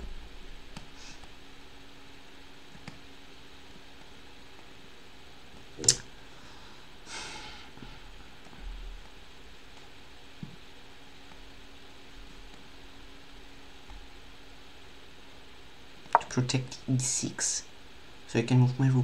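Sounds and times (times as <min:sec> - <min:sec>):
faint steady hum: 0:00.0 - 0:19.0
sharp click: 0:05.8 - 0:06.1
breathy sniff: 0:06.4 - 0:07.7.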